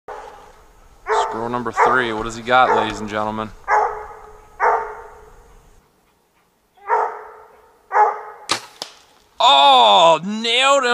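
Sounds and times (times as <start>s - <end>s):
dog barking: 1.0s - 5.3s, 6.8s - 8.5s.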